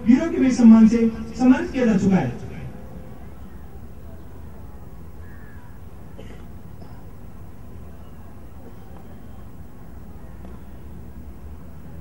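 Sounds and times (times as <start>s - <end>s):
low outdoor rumble: 0.0s - 12.0s
crow cawing: 5.2s - 5.8s.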